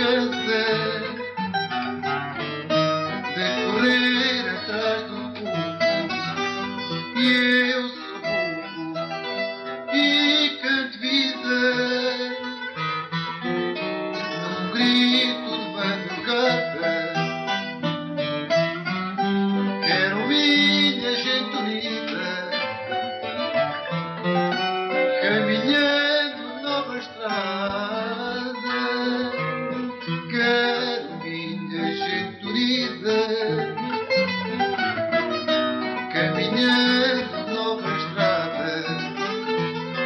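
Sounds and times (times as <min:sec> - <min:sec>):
two guitars playing plucked notes: 0:00.0 - 0:40.0.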